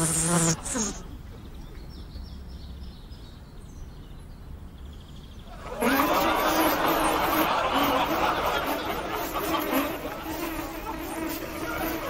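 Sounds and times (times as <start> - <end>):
fly buzzing: 0.0 - 1.0, 5.7 - 12.0.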